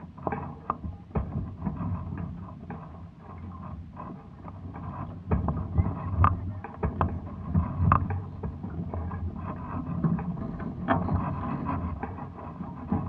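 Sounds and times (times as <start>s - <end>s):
clicks and knocks from hulls: 0.0s - 13.0s
low rumble of water: 0.0s - 13.0s.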